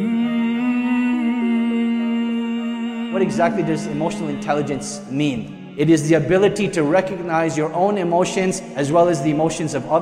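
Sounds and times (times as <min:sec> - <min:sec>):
wordless humming: 0:03.1 - 0:07.2.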